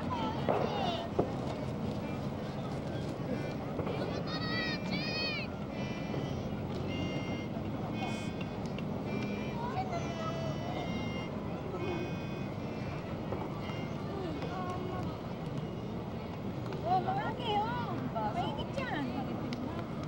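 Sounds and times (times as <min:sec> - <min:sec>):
people talking outdoors: 0:00.0 - 0:20.0.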